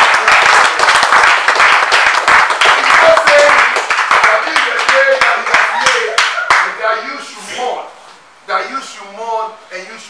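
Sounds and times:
hand clapping in time: 0.0s - 6.7s.

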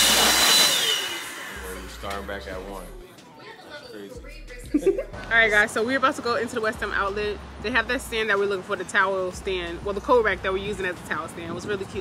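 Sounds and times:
hair dryer blowing with whine: 0.0s - 2.2s.

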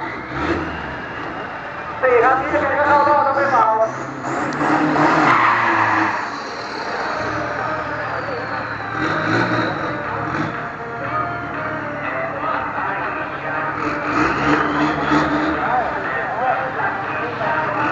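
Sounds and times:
pickup truck engine revving: 0.0s - 17.9s.

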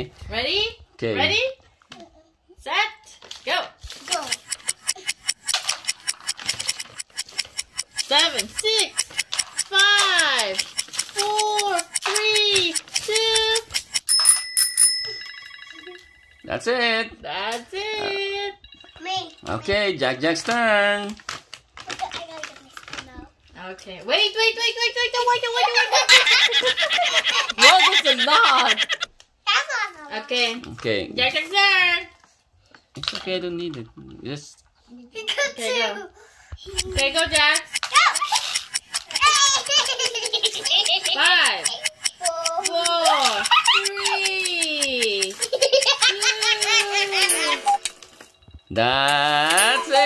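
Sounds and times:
fast even trill: 3.9s - 16.6s, 25.6s - 29.1s, 36.6s - 50.0s
bell ringing: 12.0s - 16.5s, 18.6s - 19.7s, 46.7s - 50.0s
children laughing: 25.2s - 29.1s, 36.6s - 48.0s.

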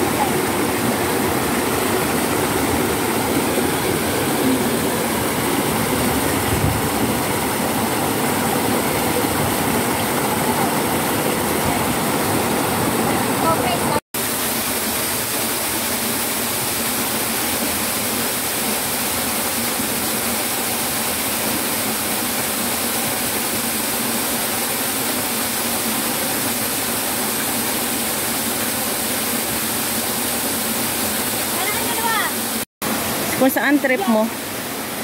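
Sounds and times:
rocky mountain stream rushing: 0.0s - 35.0s.

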